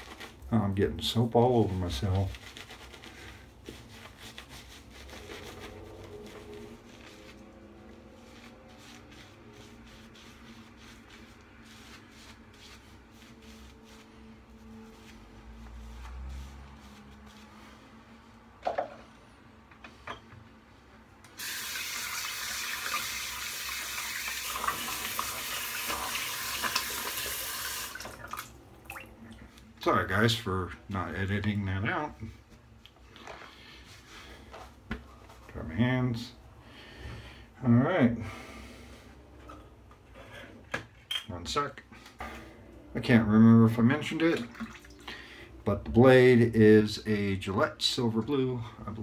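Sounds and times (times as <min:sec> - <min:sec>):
shaving brush rubbing lather: 0:00.0 - 0:18.3, 0:21.4 - 0:27.9
sink tap running: 0:21.4 - 0:28.4.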